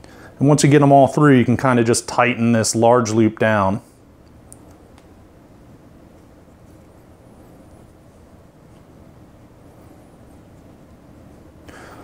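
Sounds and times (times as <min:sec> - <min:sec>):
faint low background hum: 0:00.0 - 0:12.0.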